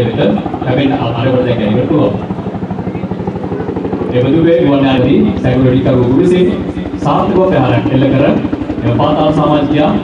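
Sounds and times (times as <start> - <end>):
helicopter rotor beating: 0.0 - 10.0.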